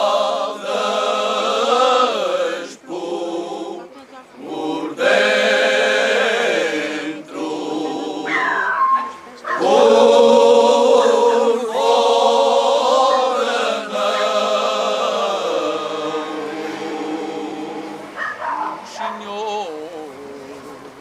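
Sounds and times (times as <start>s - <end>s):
male choir singing unaccompanied: 0.0s - 8.8s, 9.5s - 21.0s.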